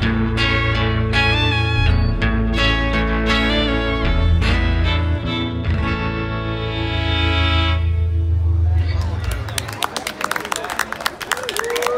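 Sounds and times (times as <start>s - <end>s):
upright bass ringing: 0.0s - 9.2s
audience clapping: 8.9s - 11.9s
voices among clapping: 8.9s - 11.9s.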